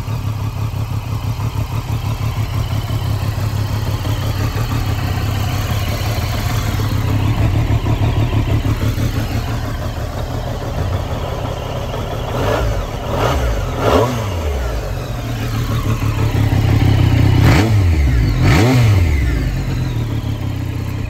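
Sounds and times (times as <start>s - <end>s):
motorcycle engine idling and revving: 0.0s - 21.0s.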